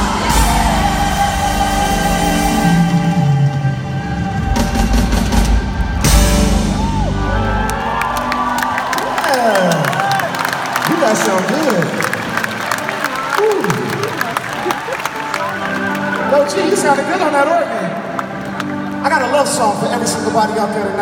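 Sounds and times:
live band playing: 0.0s - 21.0s
organ chords: 0.0s - 21.0s
crowd cheering and whooping: 5.7s - 19.1s.

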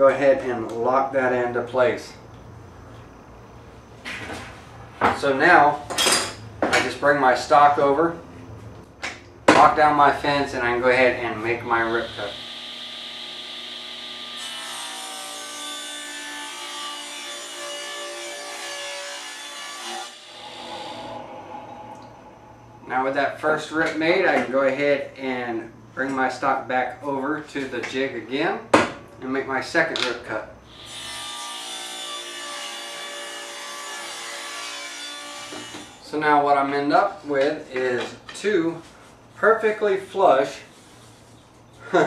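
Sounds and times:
table saw motor whine: 11.8s - 15.0s, 19.9s - 22.8s
table saw cutting wood: 11.9s - 21.9s, 30.7s - 36.0s.

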